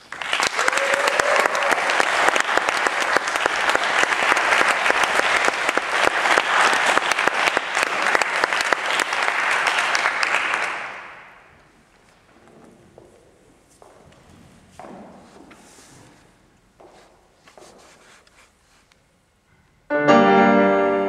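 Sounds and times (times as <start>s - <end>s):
audience applauding: 0.0s - 11.4s.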